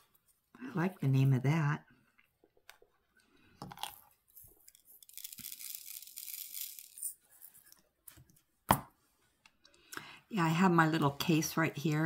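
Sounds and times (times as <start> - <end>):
resin beads poured into tray: 4.7 - 7.6.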